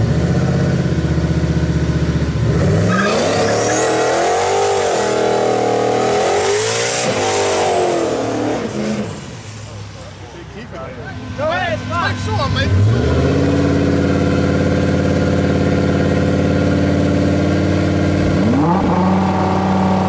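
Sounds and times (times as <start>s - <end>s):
car engine revving: 0.0s - 10.2s, 11.1s - 20.0s.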